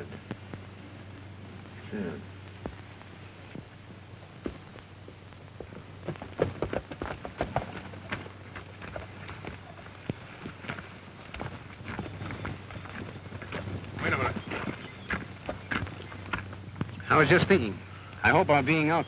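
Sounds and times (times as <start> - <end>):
film soundtrack hum and crackle: 0.0 - 19.0
horse hooves on dirt: 2.4 - 19.0.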